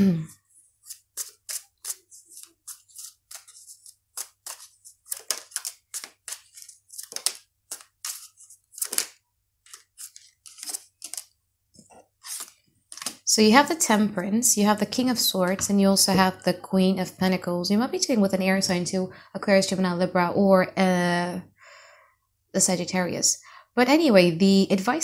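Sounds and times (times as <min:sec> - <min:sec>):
cards being shuffled by hand: 0:00.5 - 0:13.2.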